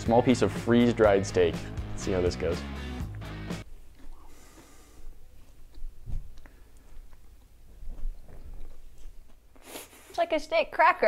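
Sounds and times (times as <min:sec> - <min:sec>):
chewing dry crunchy food: 0:03.6 - 0:09.6.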